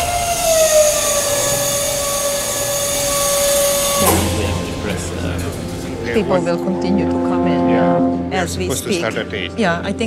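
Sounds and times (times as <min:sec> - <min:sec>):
loud drone with overtones: 0:00.0 - 0:10.0.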